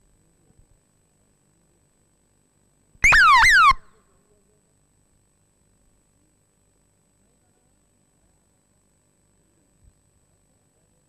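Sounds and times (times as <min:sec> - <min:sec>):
falling electronic chirps: 0:03.0 - 0:04.0.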